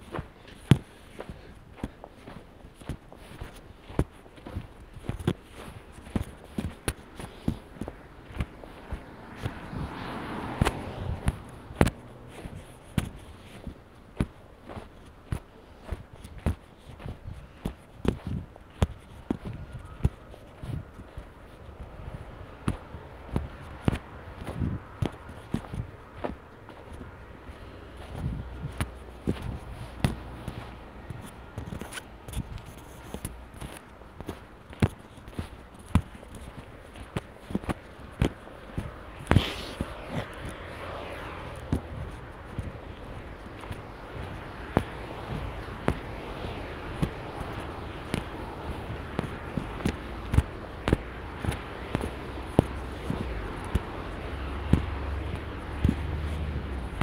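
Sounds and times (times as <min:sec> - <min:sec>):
footsteps crunching on snow: 0:00.0 - 0:57.0.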